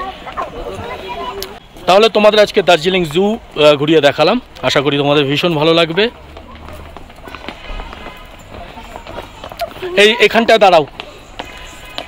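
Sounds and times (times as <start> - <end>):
faint voices: 0.0 - 12.0
footsteps on stone steps: 0.0 - 12.0.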